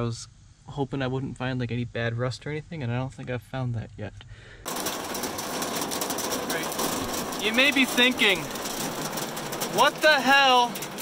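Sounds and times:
hail drumming on car roof: 0:04.7 - 0:11.0.

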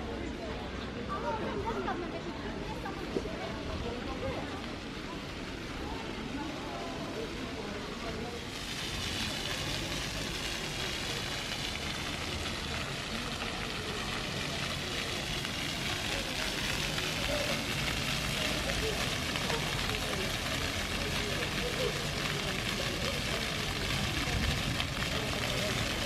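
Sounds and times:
people's voices: 0:00.0 - 0:26.0
fountain water spray hissing: 0:02.6 - 0:26.0.

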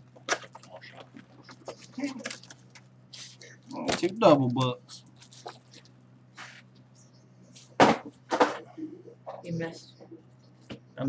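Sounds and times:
object landing with a thud: 0:07.8 - 0:08.6.

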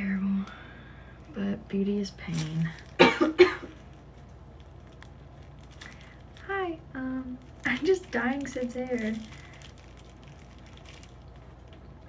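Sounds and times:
woman coughing: 0:03.0 - 0:03.8.

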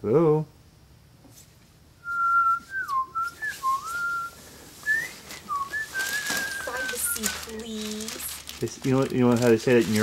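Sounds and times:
person whistling a tune: 0:02.0 - 0:07.5.

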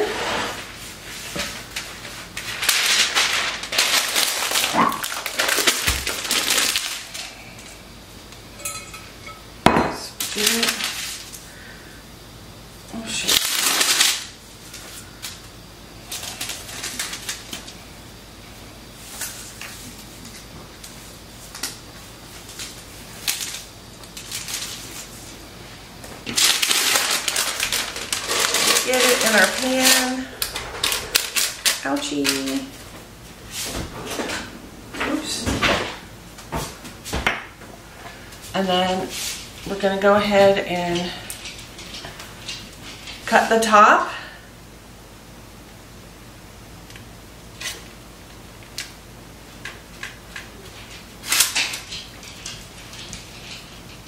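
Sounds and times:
parchment paper rustling: 0:00.5 - 0:07.6, 0:10.2 - 0:11.6, 0:13.0 - 0:17.8, 0:19.0 - 0:34.2.

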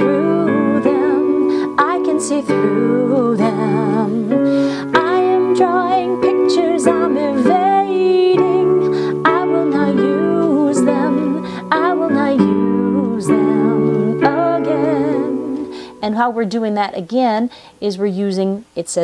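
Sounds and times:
electronic keyboard chords: 0:00.0 - 0:16.5
person singing with vibrato: 0:00.0 - 0:16.5.

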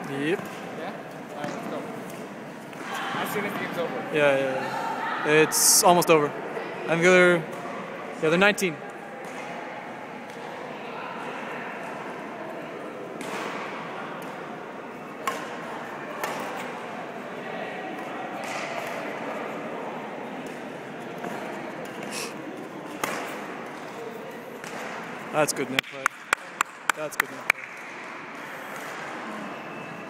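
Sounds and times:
murmur of voices: 0:00.0 - 0:30.0.

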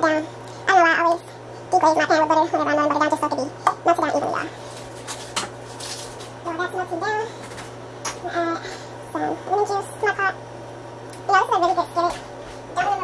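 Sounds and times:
high-pitched voice talking: 0:11.3 - 0:12.2, 0:12.8 - 0:13.0.

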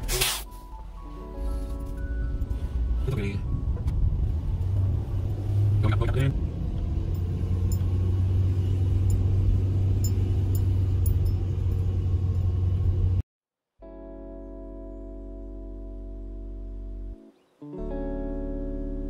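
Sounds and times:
car engine and road rumble: 0:00.0 - 0:13.2.

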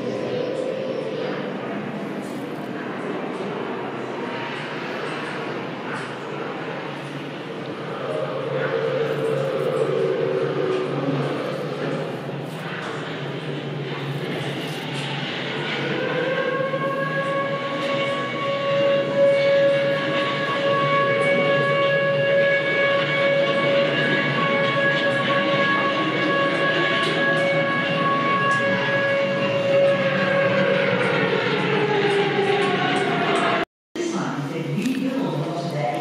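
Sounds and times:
air-raid siren wailing: 0:00.0 - 0:33.6.

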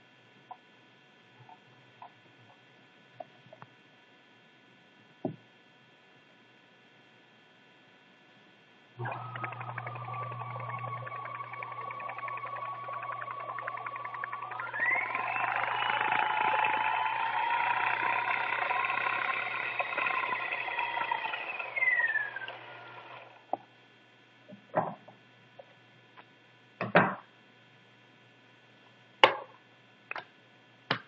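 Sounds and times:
sewing machine motor whine: 0:09.0 - 0:23.6.

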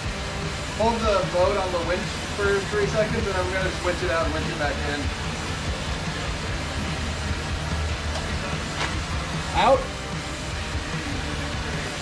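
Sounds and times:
electric winch motor drone: 0:00.0 - 0:12.0.

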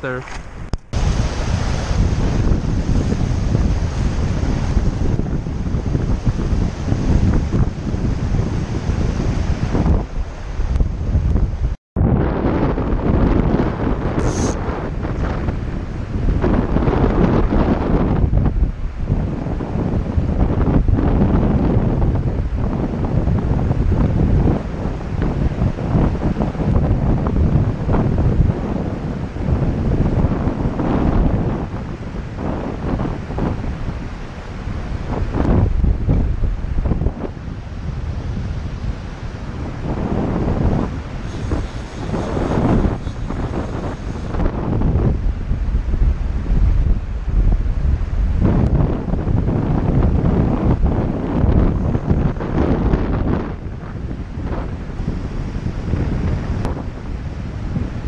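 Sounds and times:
gusty wind buffeting microphone: 0:00.0 - 0:58.0.

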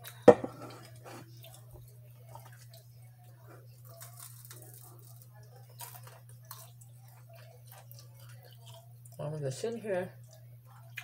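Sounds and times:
person chewing fries: 0:00.0 - 0:09.2.

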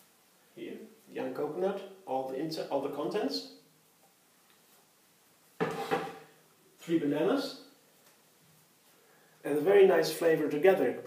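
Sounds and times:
blender jar set down knock: 0:05.6 - 0:06.2.

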